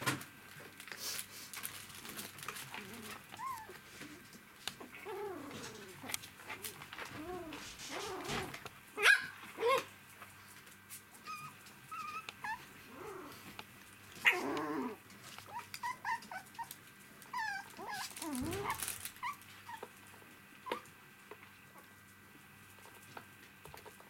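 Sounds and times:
puppies yipping and whimpering: 3.4s - 3.8s, 11.2s - 13.4s, 14.2s - 16.7s, 17.3s - 19.9s
puppy yelps: 9.0s - 9.9s, 15.5s - 16.7s, 17.3s - 19.8s.

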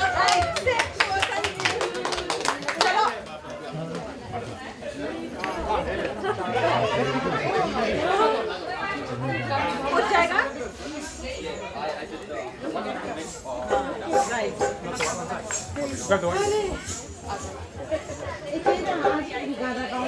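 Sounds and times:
people chatting: 0.0s - 20.0s.

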